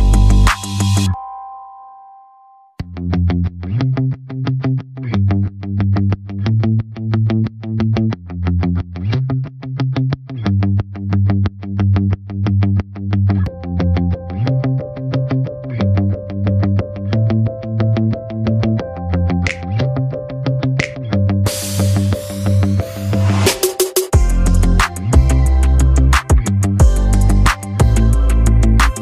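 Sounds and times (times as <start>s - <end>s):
instrumental music with fast beat: 0.0s - 1.2s, 19.4s - 19.8s, 20.7s - 29.0s.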